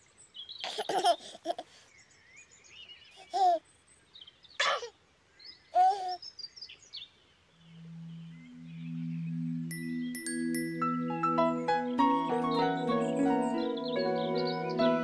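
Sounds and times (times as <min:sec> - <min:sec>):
birdsong: 0:00.0 - 0:15.0
baby giggling: 0:00.6 - 0:01.8, 0:03.2 - 0:03.6, 0:05.8 - 0:06.2
low sustained music notes: 0:07.5 - 0:15.0
high chime notes: 0:07.9 - 0:15.0.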